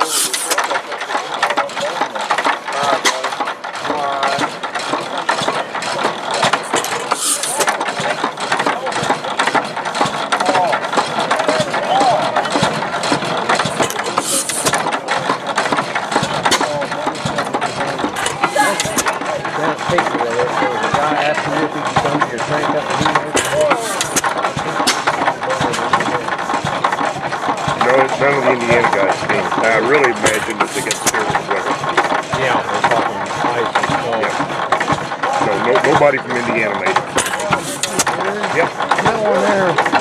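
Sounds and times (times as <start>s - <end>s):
gas engine clattering: 0.0s - 40.0s.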